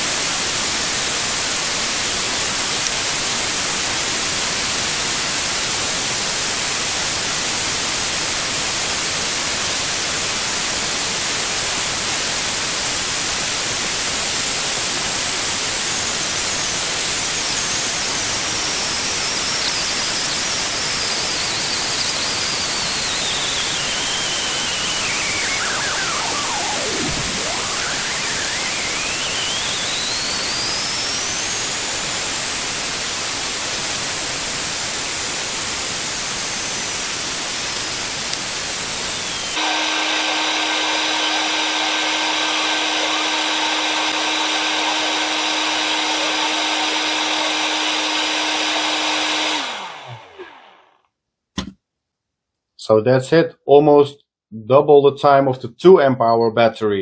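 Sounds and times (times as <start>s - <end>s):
air pump running: 19.8s - 32.4s, 38.6s - 50.9s.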